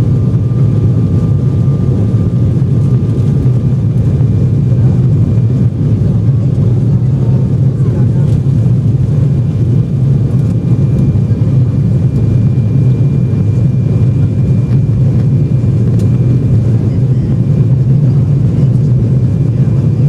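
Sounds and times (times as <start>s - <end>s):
airliner cabin roar: 0.0s - 20.0s.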